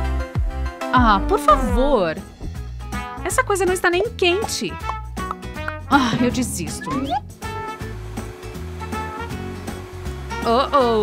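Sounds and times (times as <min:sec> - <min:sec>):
background music: 0:00.0 - 0:11.0
vacuum cleaner running: 0:06.1 - 0:11.0.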